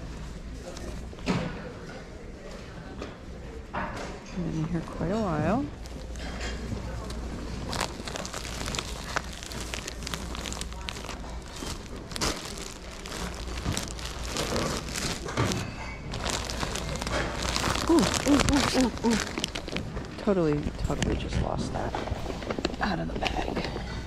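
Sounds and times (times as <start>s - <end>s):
plastic bags crinkling: 4.8s - 23.6s.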